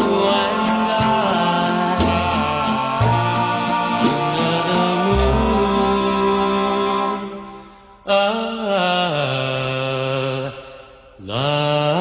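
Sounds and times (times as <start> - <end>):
single voice singing long notes: 0.0 - 12.0.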